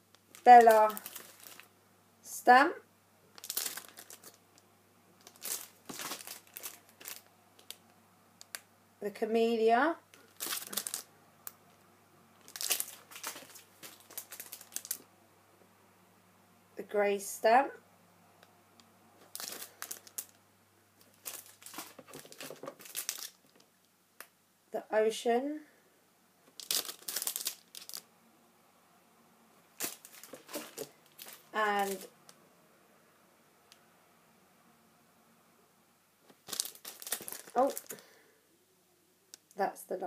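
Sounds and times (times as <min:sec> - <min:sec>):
plastic packets crinkling: 0:00.2 - 0:01.7, 0:03.3 - 0:04.6, 0:05.2 - 0:08.6, 0:10.1 - 0:11.6, 0:12.4 - 0:15.0, 0:19.2 - 0:20.4, 0:21.0 - 0:23.7, 0:26.5 - 0:28.1, 0:29.8 - 0:32.2, 0:36.3 - 0:38.1.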